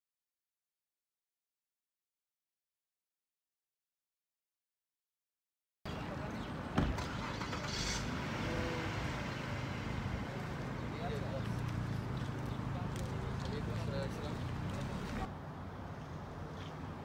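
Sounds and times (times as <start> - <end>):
faint voices: 5.9 - 15.3
vehicle engine humming: 5.9 - 17.0.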